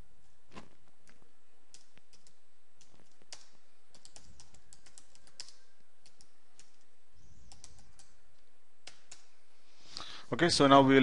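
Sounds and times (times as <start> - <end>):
computer keyboard typing: 1.7 - 9.3.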